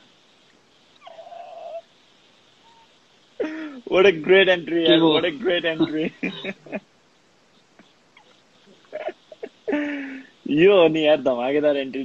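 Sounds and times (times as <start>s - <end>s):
man laughing high-pitched: 3.4s - 3.9s, 4.9s - 6.8s, 8.8s - 10.4s.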